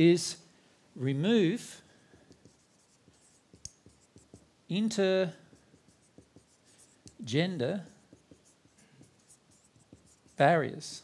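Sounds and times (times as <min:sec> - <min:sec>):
marker pen writing on whiteboard: 0:01.9 - 0:11.0.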